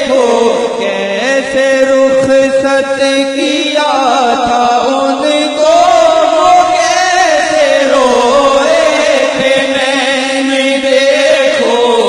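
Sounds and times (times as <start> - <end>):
man chanting devotional recitation: 0.0 - 12.0.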